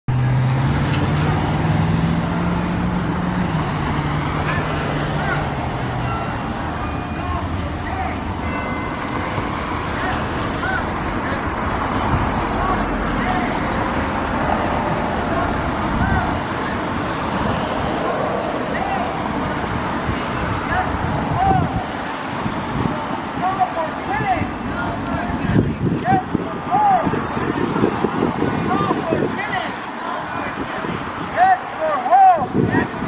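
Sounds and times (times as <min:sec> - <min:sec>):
road traffic noise: 0:00.0 - 0:33.0
bus engine running: 0:00.1 - 0:33.0.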